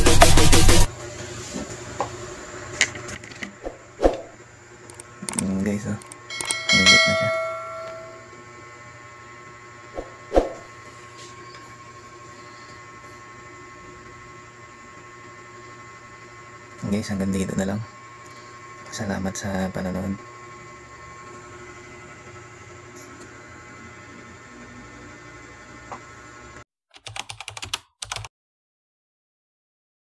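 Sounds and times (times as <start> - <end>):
clip fan motor hum: 2.8 - 8.3
bell-like ringing tone: 6.3 - 8.3.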